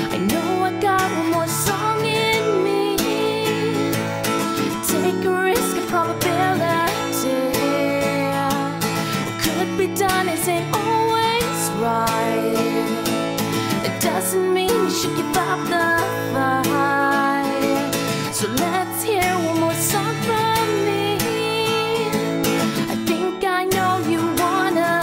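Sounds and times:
acoustic guitar strumming: 0:00.0 - 0:25.0
woman singing: 0:00.0 - 0:25.0.

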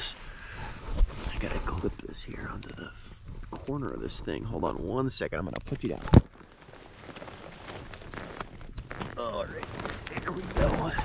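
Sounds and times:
faint rustling: 0:00.0 - 0:11.0.

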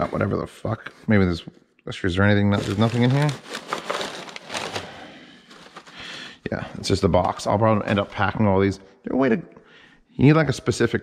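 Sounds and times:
paper and plastic wrap rustling: 0:02.5 - 0:06.2, 0:07.2 - 0:08.4.

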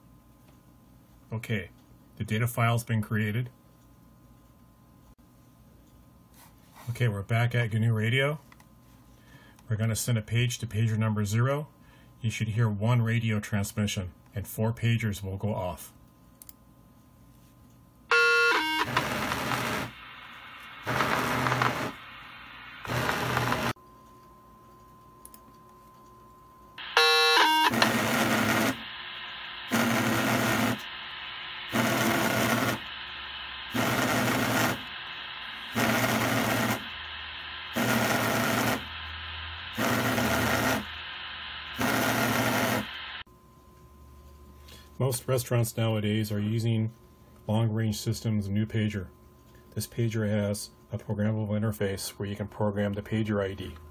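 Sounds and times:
pagers buzzing in pulses: 0:18.1 - 0:23.8, 0:26.8 - 0:43.2
radio buzzing tone burst: 0:18.1 - 0:23.8, 0:26.8 - 0:43.3
radio hiss bursts: 0:18.1 - 0:23.8, 0:26.8 - 0:43.3.

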